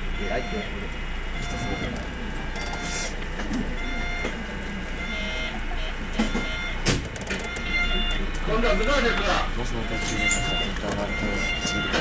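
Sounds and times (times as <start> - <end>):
steady low hum: 0.0 - 12.0
short electronic tones: 0.2 - 12.0.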